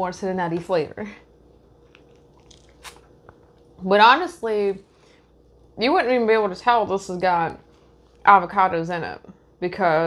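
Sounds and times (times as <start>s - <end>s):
mouth and lip clicks: 1.9s - 3.6s
sipping through a straw: 2.4s - 3.1s.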